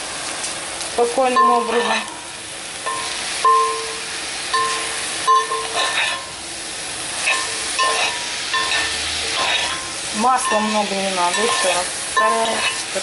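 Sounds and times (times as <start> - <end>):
meat and vegetables sizzling: 0.0 - 13.0
utensil scraping pot: 1.5 - 2.1, 5.4 - 6.3, 7.2 - 13.0.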